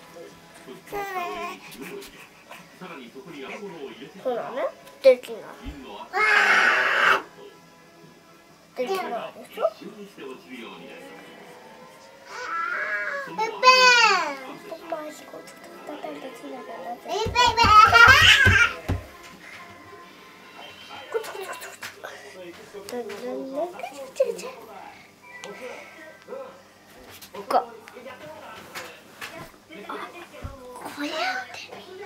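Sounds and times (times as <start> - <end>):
baby panting: 1.0 - 2.9
baby grunting and whimpering: 6.1 - 7.3.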